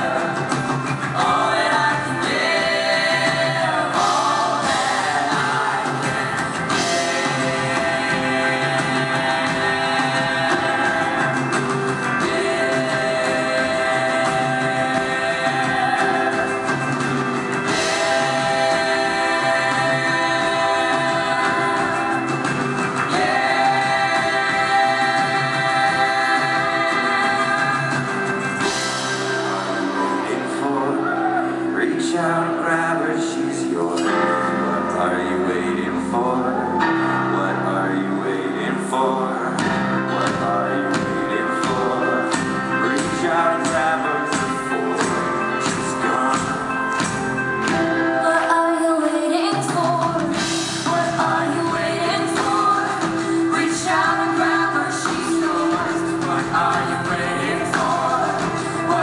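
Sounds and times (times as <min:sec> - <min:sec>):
live band playing: 0:00.0 - 0:59.0
voices singing held notes: 0:00.0 - 0:59.0.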